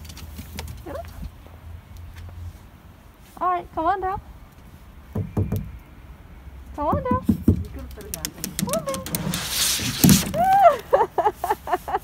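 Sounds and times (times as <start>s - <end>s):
dog claws clicking on wooden steps: 7.0s - 10.6s.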